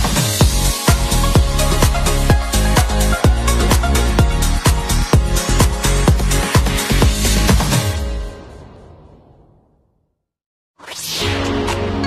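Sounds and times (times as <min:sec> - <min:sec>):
background music with bass: 0:00.0 - 0:08.6.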